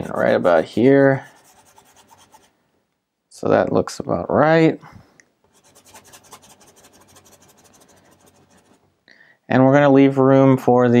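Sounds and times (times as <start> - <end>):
paintbrush scrubbing on canvas: 0.0 - 2.5, 5.5 - 8.8.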